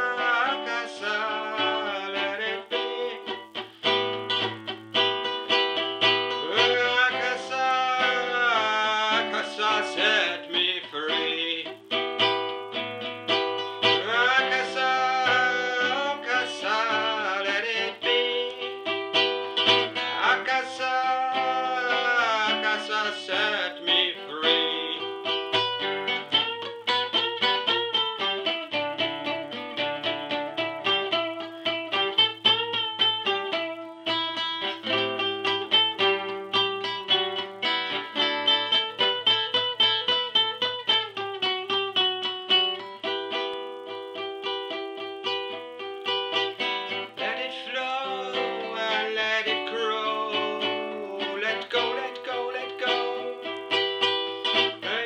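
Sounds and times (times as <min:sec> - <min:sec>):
person singing wordlessly: 0:00.0 - 0:03.7, 0:06.2 - 0:12.0, 0:13.8 - 0:26.8, 0:46.4 - 0:55.0
acoustic guitar reggae improvisation: 0:00.0 - 0:55.0.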